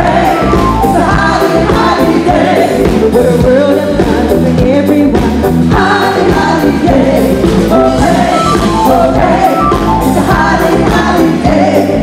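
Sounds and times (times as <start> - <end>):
drums: 0.0 - 12.0
electric guitar: 0.0 - 12.0
keyboards: 0.0 - 12.0
women singing together: 0.0 - 12.0.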